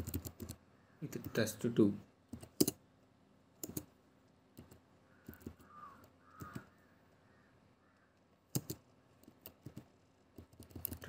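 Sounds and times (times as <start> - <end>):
keyboard key presses: 0.0 - 0.6, 3.6 - 3.9, 4.6 - 6.7, 8.5 - 11.0.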